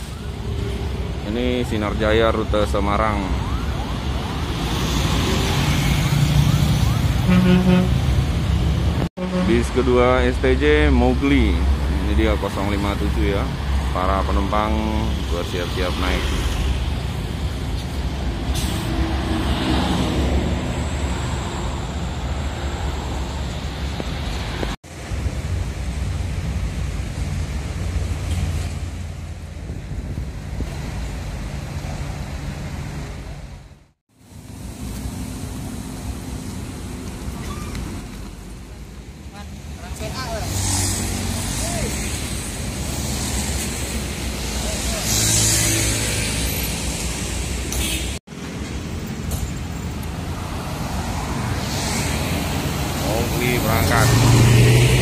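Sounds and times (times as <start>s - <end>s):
diesel bus engines rumbling: 0.0s - 55.0s
motorbikes passing: 2.7s - 9.8s, 34.5s - 47.7s, 48.4s - 55.0s.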